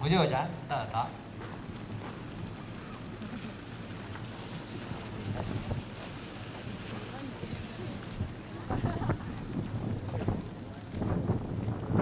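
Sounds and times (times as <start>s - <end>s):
faint crowd voices: 0.0s - 12.0s
wind rumbling on microphone: 1.9s - 12.0s.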